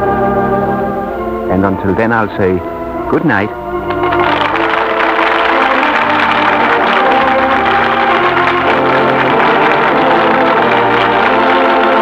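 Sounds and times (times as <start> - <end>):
slow sustained orchestral chords: 0.0 - 12.0.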